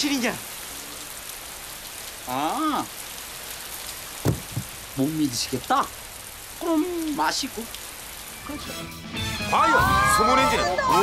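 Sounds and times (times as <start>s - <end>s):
short low thump: 4.3s - 5.0s.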